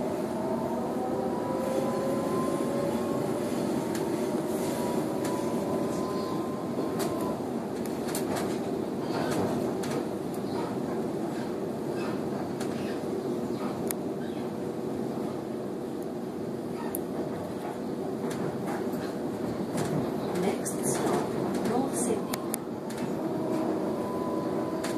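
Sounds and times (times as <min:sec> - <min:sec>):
traction motor whine: 0:00.0 - 0:07.4, 0:22.8 - 0:24.9
train wheels rumbling on rails: 0:00.0 - 0:24.9.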